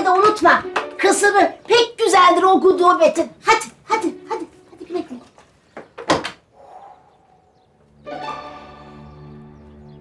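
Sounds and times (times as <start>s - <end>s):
wooden door banging shut: 5.8s - 6.5s.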